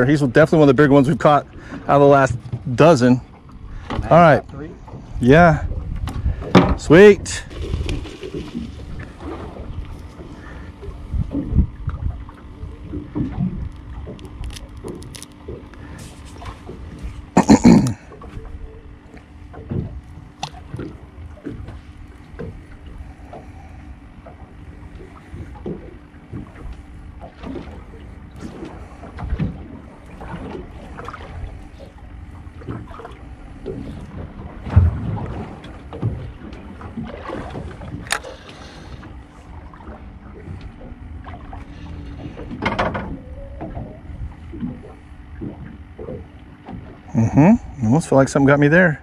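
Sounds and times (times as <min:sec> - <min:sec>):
waves slapping boat hull: 0:00.0 - 0:49.0
wind buffeting microphone: 0:03.6 - 0:15.0.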